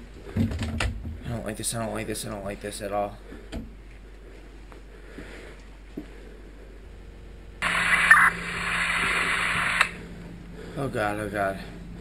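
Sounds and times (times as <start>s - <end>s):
low hum: 2.0s - 12.0s
radio static hiss: 7.6s - 10.2s.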